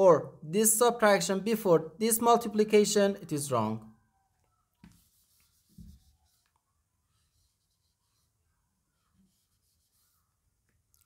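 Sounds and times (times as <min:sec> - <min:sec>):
whiteboard eraser swishing: 0:04.8 - 0:06.5.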